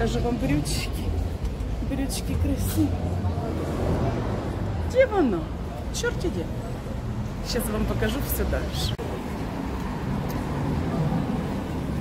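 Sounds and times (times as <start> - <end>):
city traffic rumble: 0.0 - 12.0.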